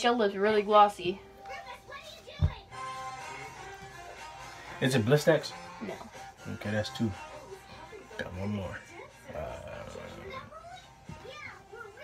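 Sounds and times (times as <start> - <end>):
television music and voices: 0.0 - 12.0.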